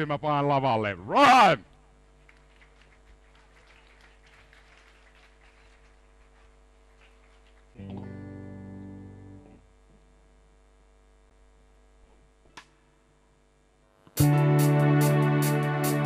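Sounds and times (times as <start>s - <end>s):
amplified guitar chord: 7.8s - 9.6s, 14.2s - 16.0s.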